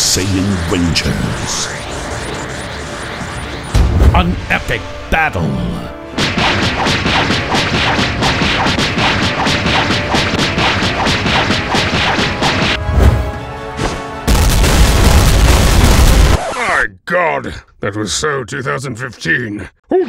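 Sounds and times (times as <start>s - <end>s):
trailer music: 0.0s - 16.4s
explosion rumble: 1.2s - 4.8s, 14.3s - 16.4s
heavy boom: 3.7s - 4.5s
punch and hit impacts: 6.2s - 13.2s.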